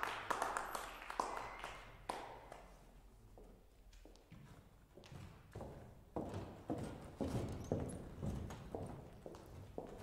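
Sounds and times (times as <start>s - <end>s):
hard-soled footsteps on stage floor: 3.3s - 10.0s.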